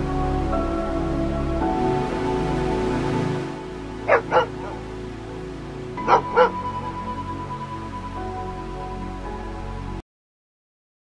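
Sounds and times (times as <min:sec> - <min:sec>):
soft background music: 0:00.0 - 0:10.0
dog barking: 0:04.1 - 0:04.8, 0:06.0 - 0:06.6.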